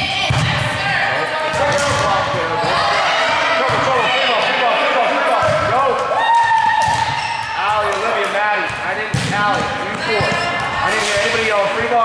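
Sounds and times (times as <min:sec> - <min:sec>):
players calling out: 0:00.0 - 0:12.0
volleyball being hit: 0:06.4 - 0:11.5
shoes squeaking on gym floor: 0:07.0 - 0:07.6.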